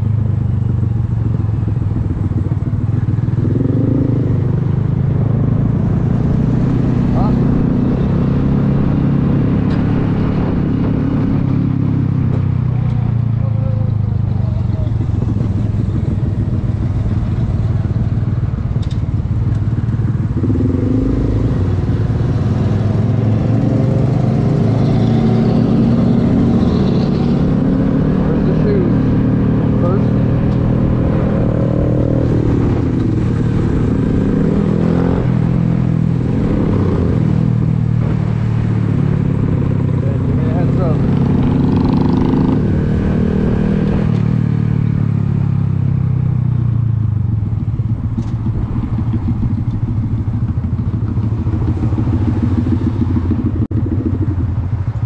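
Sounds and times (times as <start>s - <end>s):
motorcycle engine running: 0.0s - 55.0s
road rumble: 0.0s - 55.0s
wind noise: 1.1s - 12.4s.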